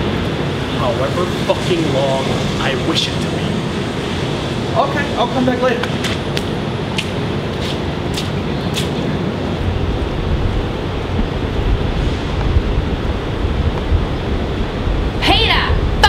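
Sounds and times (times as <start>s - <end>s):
low traffic rumble: 0.0s - 16.0s.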